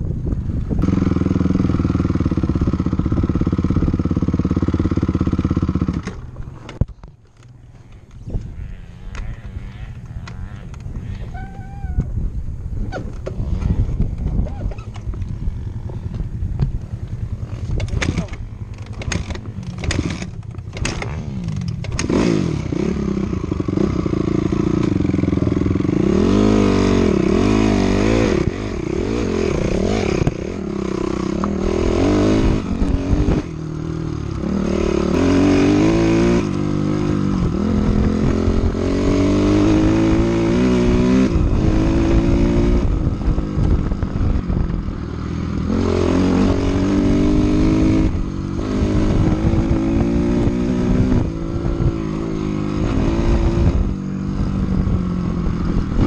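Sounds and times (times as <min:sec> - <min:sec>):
off-road vehicle engine revving: 0:17.2 - 0:56.0.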